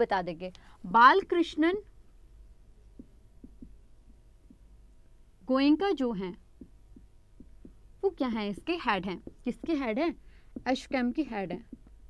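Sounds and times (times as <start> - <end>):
woman speaking: 0.0 - 1.9, 5.5 - 6.4, 8.0 - 11.7
low steady hum: 0.0 - 12.0
marker writing on whiteboard: 3.0 - 4.6, 6.6 - 12.0.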